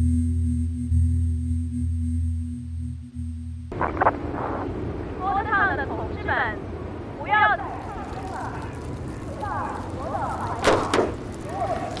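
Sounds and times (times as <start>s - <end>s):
ambient drone music: 0.0s - 3.7s
loud rough background noise: 3.7s - 12.0s.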